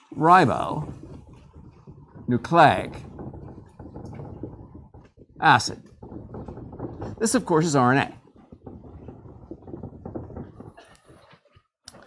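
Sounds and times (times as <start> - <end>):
marker scratching on whiteboard: 0.1 - 11.6.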